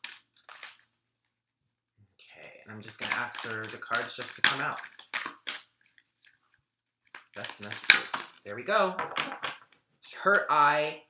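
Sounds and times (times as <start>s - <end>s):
cards being shuffled: 0.0s - 0.9s, 2.8s - 6.4s, 7.1s - 8.4s.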